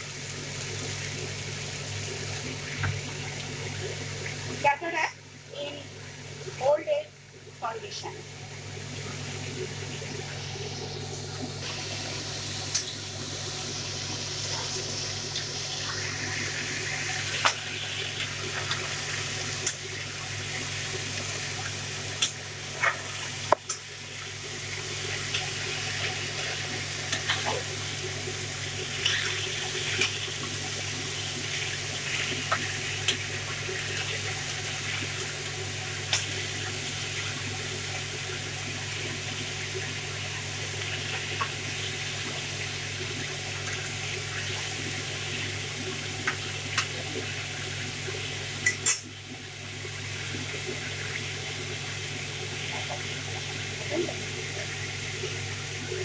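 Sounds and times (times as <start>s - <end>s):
vegetables sizzling in oil: 0.0s - 56.0s.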